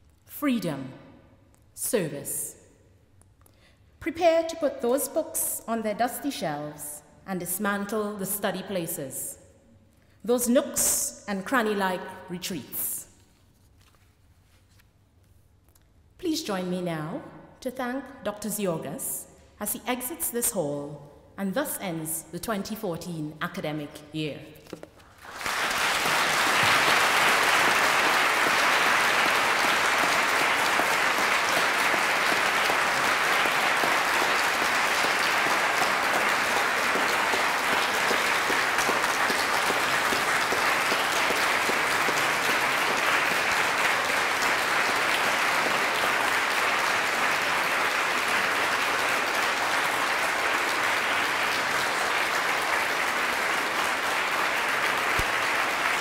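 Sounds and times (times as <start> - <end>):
audience applause: 25.2 - 56.0.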